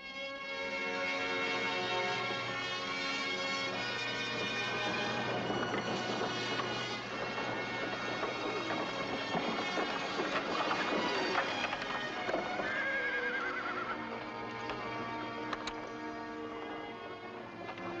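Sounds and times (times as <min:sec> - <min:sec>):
background music: 0:00.0 - 0:18.0
hooves clip-clopping: 0:00.4 - 0:18.0
wagons rattling: 0:01.1 - 0:18.0
horse neighing: 0:12.5 - 0:14.1.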